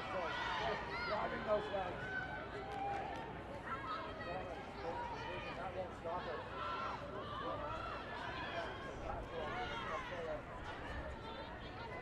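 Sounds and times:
outdoor ground noise: 0.0 - 12.0.

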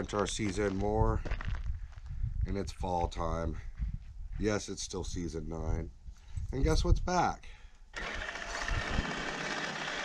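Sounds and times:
tyres on gravel: 0.0 - 1.8
electric motor whine: 8.0 - 10.0.

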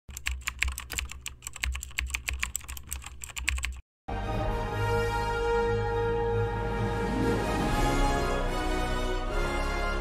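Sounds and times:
keyboard typing: 0.1 - 3.8.

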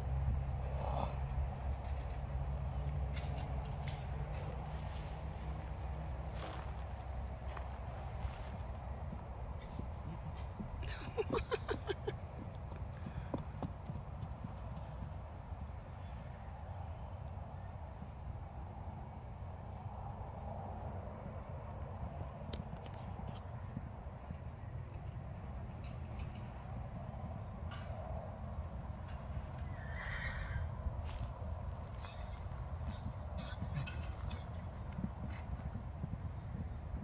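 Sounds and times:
steady low rumble: 0.0 - 27.4
horse hooves on dirt: 0.0 - 28.0, 31.0 - 37.0
horse whinnying: 29.7 - 30.7.

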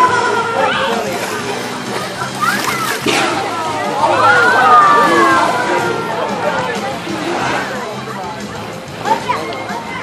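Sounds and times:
background music: 0.0 - 10.0
voices: 0.0 - 10.0.

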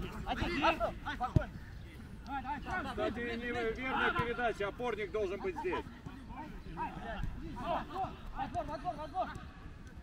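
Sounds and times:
footballers calling out: 0.0 - 10.0.

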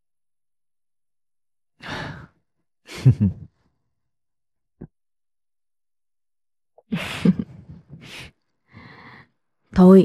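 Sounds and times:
person laughing: 2.9 - 3.5, 6.9 - 8.2.

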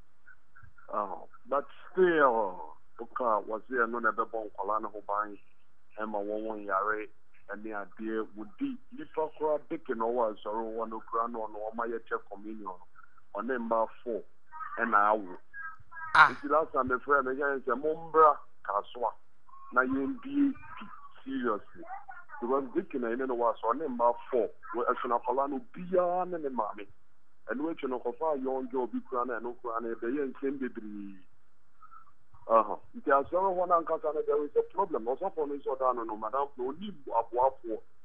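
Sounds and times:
person talking: 0.6 - 5.4, 6.0 - 26.8, 27.5 - 31.2, 31.9 - 37.8.

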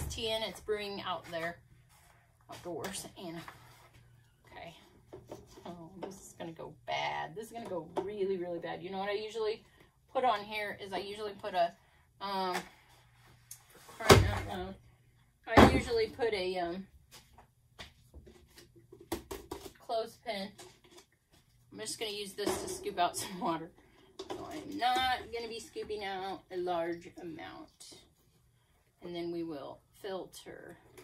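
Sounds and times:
faint knocks and rustles: 1.1 - 6.2, 17.1 - 19.8.

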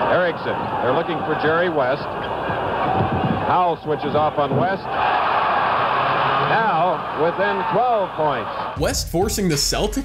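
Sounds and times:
arena crowd cheering: 0.0 - 9.1.

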